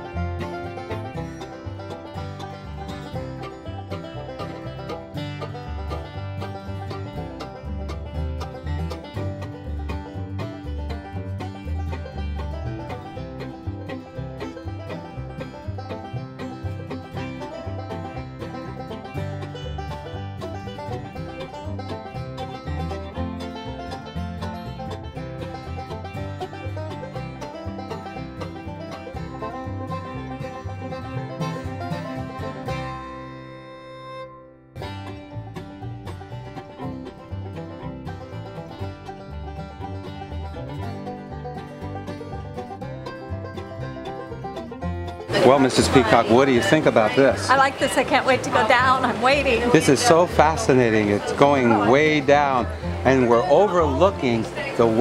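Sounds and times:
bluegrass banjo music: 0:00.0 - 0:55.0.

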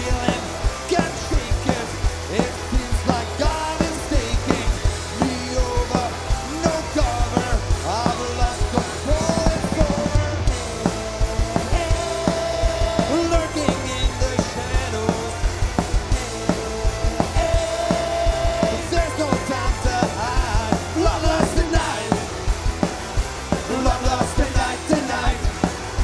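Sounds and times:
punk rock band playing live: 0:00.0 - 0:26.0.

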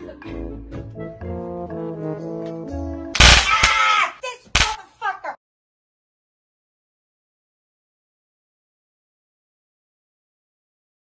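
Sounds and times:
loud crash: 0:03.2 - 0:03.7
sharp bang: 0:03.2 - 0:03.8.

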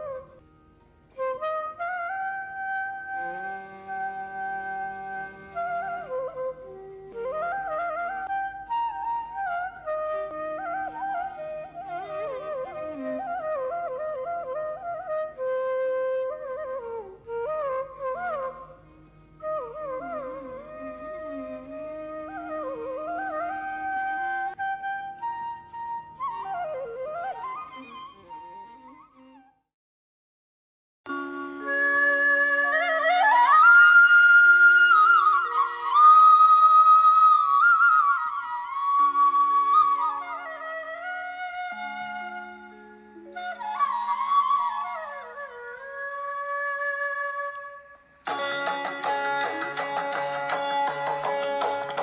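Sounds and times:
bamboo flute melody: 0:00.0 - 0:00.4, 0:01.0 - 0:29.7, 0:31.1 - 0:52.0.

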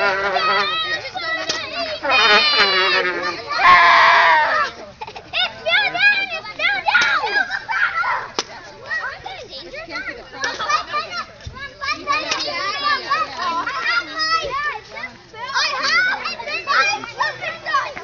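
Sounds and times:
children talking and calling out: 0:00.0 - 0:18.0.

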